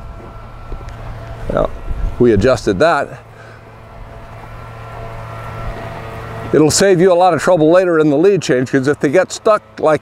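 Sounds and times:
low engine drone: 0.0 - 10.0.

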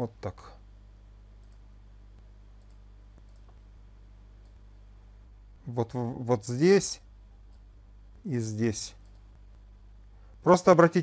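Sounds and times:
low electrical hum: 0.0 - 11.0
computer mouse clicks: 1.4 - 1.7, 2.6 - 3.6, 4.4 - 4.6, 9.0 - 9.4.

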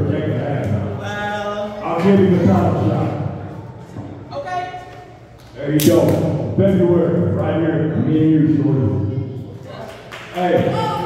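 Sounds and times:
man shouting: 10.5 - 11.0.

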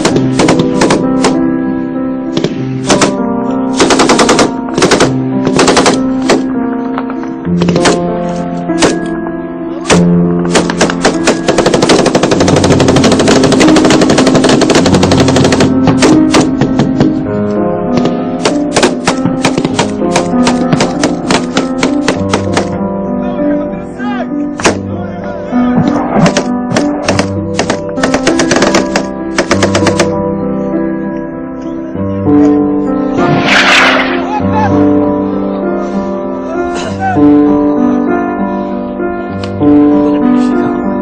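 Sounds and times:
automatic gunfire: 0.0 - 1.4, 2.8 - 3.2, 3.8 - 6.4, 9.9 - 16.5, 18.4 - 22.7, 26.3 - 30.1
background music with sustained notes: 0.0 - 41.0
single gunshots: 33.2 - 34.3.

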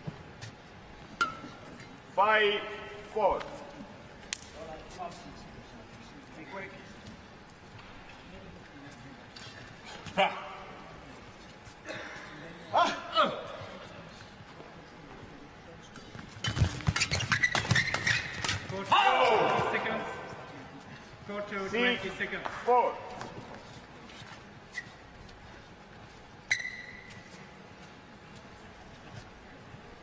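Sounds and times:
shoes squeaking on court: 8.8 - 10.3, 16.0 - 19.8, 23.0 - 29.4.

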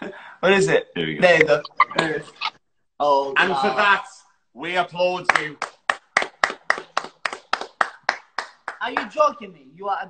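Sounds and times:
hands clapping rhythmically: 5.2 - 9.4.

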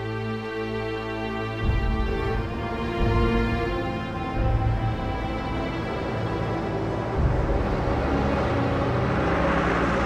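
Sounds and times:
truck and car driving past: 4.1 - 10.0.

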